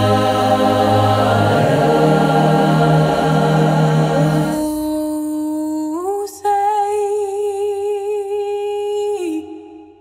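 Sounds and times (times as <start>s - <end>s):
woman singing unaccompanied: 4.5s - 9.6s.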